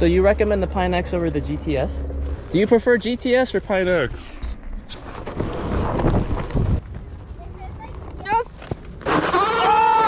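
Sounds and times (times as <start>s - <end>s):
rumble of board riding: 4.2s - 10.0s
wind buffeting microphone: 5.2s - 8.4s.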